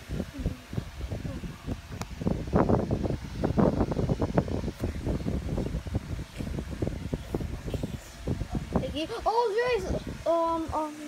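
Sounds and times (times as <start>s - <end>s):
microphone handling noise: 0.0s - 9.0s.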